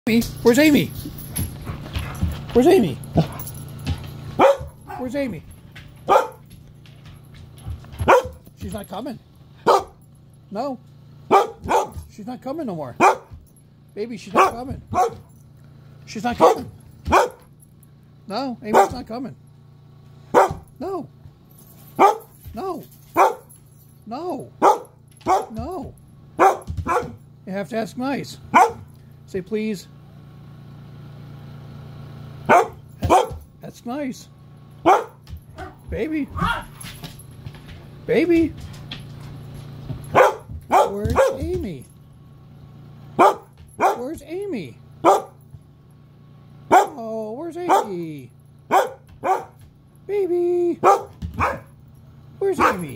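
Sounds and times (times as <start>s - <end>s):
appliance humming: 0.1s - 52.9s
dog barking: 4.4s - 5.1s, 6.1s - 6.5s, 8.0s - 8.4s, 9.6s - 10.0s, 11.3s - 12.1s, 13.0s - 13.4s, 14.3s - 15.3s, 16.3s - 17.5s, 18.7s - 19.0s, 20.3s - 20.7s, 22.0s - 22.4s, 23.1s - 23.6s, 24.6s - 25.6s, 26.4s - 27.2s, 28.5s - 28.9s, 32.5s - 33.4s, 34.8s - 35.8s, 36.4s - 36.8s, 40.0s - 41.5s, 43.2s - 44.1s, 45.0s - 45.4s, 46.7s - 47.0s, 47.6s - 48.0s, 48.7s - 49.6s, 50.8s - 51.7s, 52.6s - 52.9s.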